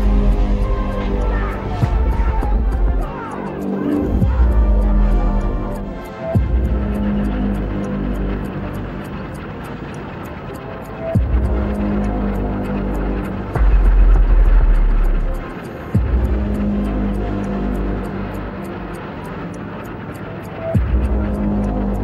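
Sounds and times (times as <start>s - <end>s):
fast steady ticking: 0.0s - 22.0s
low engine-like rumble: 0.0s - 22.0s.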